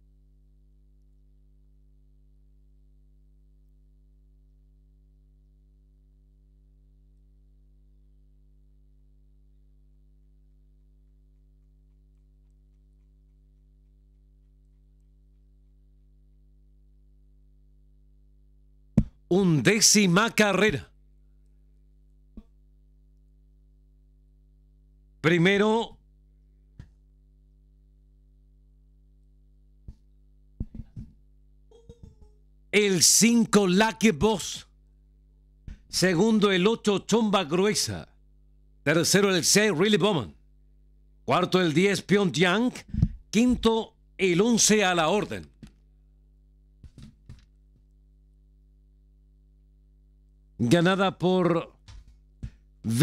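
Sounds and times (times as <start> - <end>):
faint steady hum: 0.0 - 53.0.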